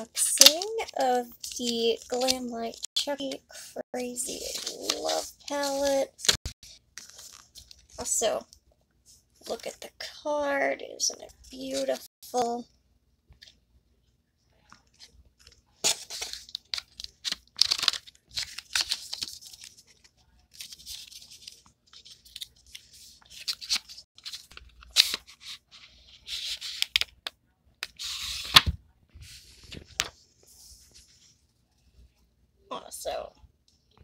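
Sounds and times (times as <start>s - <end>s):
cardboard packaging rustling: 15.8s - 26.8s.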